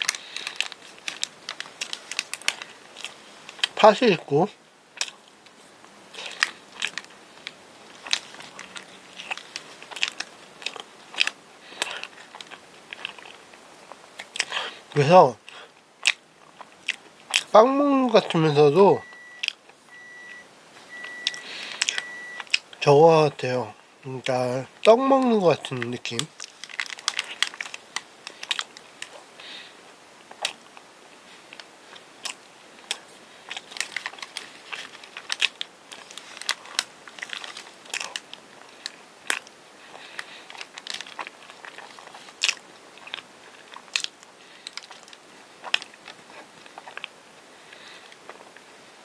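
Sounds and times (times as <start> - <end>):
mouth chewing clicks and smacks: 6.2 - 14.7, 15.4 - 17.5, 21.0 - 22.8, 30.3 - 30.9, 31.5 - 47.2.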